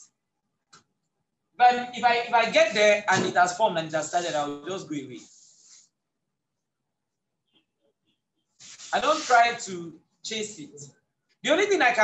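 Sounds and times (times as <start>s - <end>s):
man speaking: 1.6s - 5.3s, 8.9s - 12.0s.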